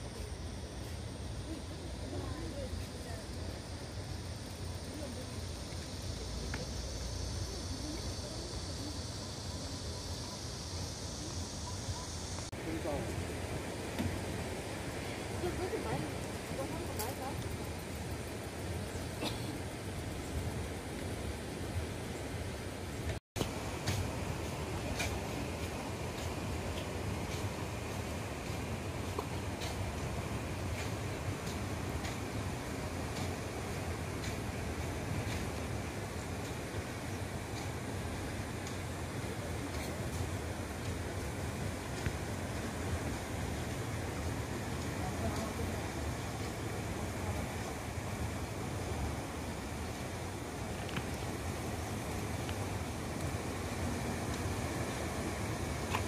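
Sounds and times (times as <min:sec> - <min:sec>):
hiss: 0:00.0 - 0:56.0.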